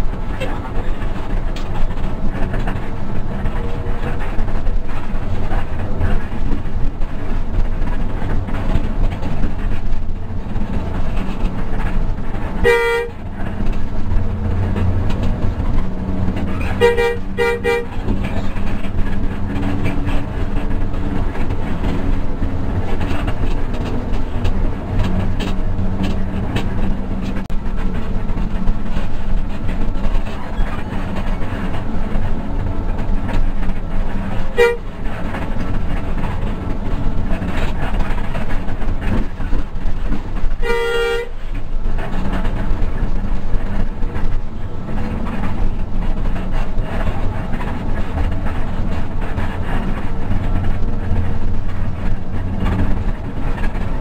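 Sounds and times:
bus engine and road noise: 0.0s - 54.0s
horn blasts: 12.6s - 13.3s, 16.6s - 18.1s, 34.5s - 34.9s, 40.6s - 41.4s.

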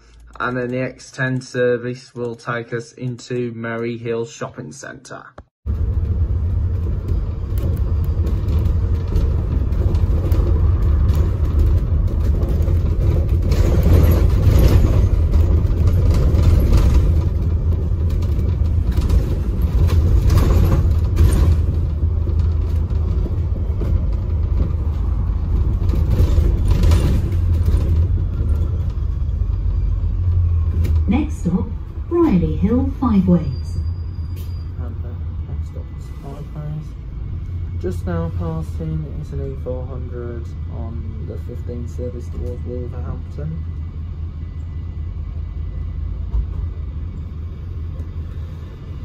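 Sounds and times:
bus engine and road rumble: 5.7s - 49.0s.

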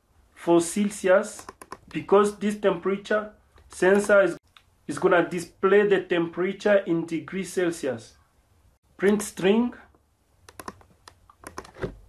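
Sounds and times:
mouse and keyboard clicks: 1.4s - 2.0s, 3.6s - 4.7s, 10.4s - 11.9s.

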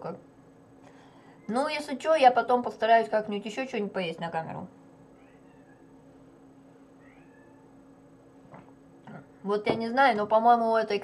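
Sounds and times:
cat meowing faintly: 5.2s - 6.0s, 7.0s - 7.7s.

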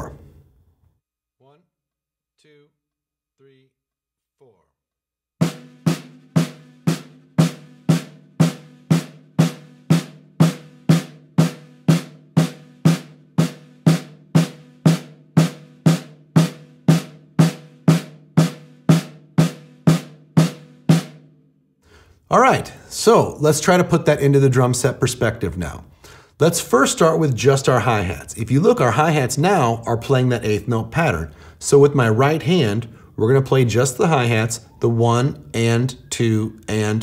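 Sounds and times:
snare drum strokes: 5.4s - 21.2s.

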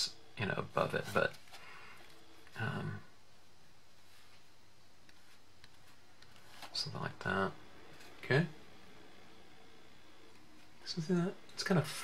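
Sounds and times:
man speaking: 0.0s - 1.4s, 2.5s - 3.1s, 6.6s - 8.6s, 10.8s - 12.0s
low even hiss: 0.0s - 12.0s.

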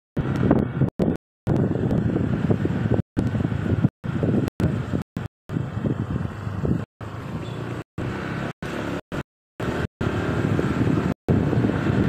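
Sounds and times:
car engine and road noise: 0.2s - 12.0s.

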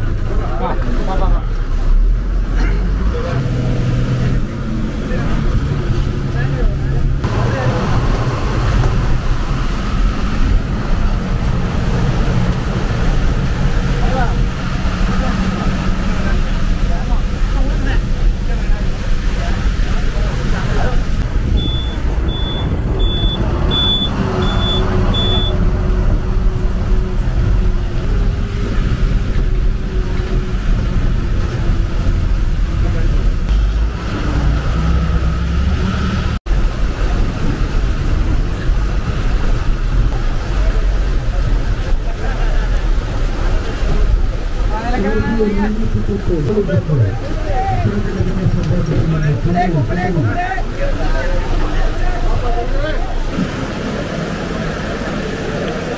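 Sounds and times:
bus engine and road rumble: 0.0s - 55.9s
short high beeps: 21.6s - 25.6s.

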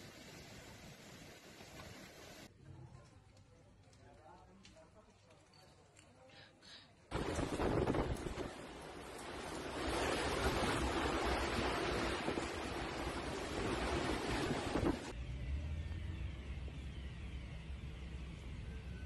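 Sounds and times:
wind buffeting microphone: 7.1s - 15.1s.

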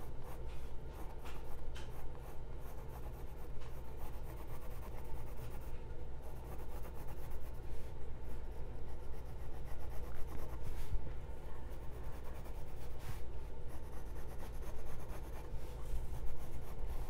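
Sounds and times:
pencil scratching on canvas: 0.0s - 10.9s, 11.7s - 17.0s.

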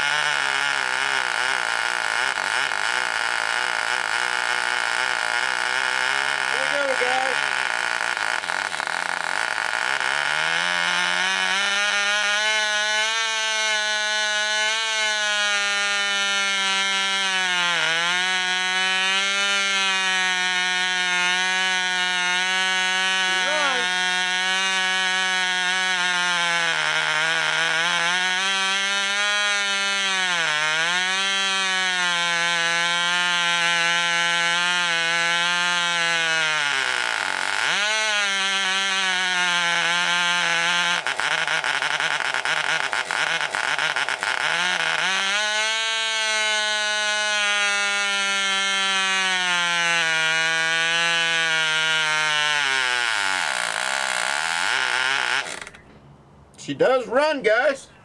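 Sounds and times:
model airplane engine running: 0.0s - 55.9s.

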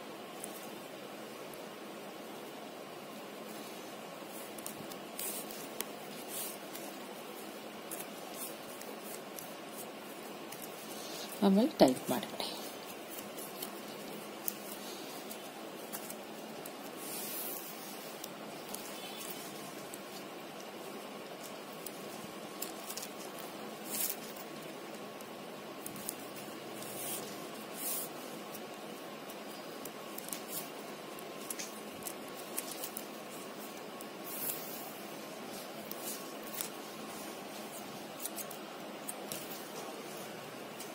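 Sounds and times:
background hiss: 0.0s - 40.9s
scratchy swishes of plastic strips: 3.4s - 40.9s.

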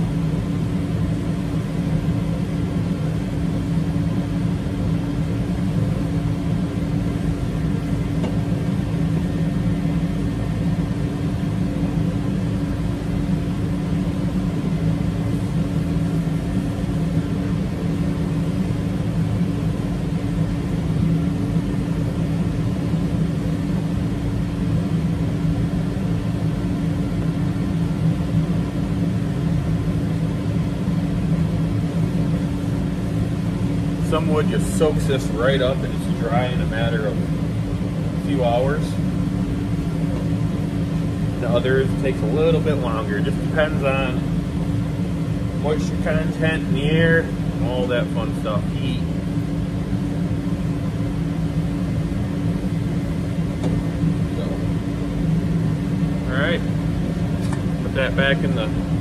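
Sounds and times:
machine humming and whirring: 0.0s - 59.0s.

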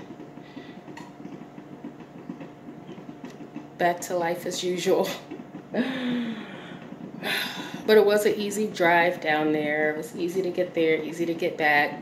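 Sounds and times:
low mechanical hum with rattle: 0.0s - 12.0s.

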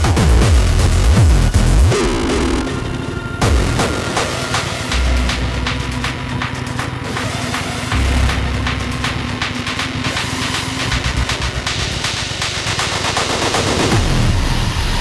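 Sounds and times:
distorted techno percussion: 0.0s - 15.0s
heavy bass: 0.0s - 15.0s.

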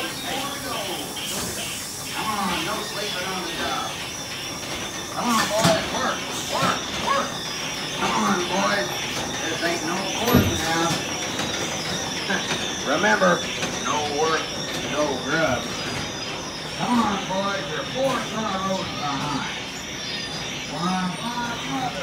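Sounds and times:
steady hiss: 0.0s - 6.6s
recorded animatronic voices: 0.0s - 22.0s.

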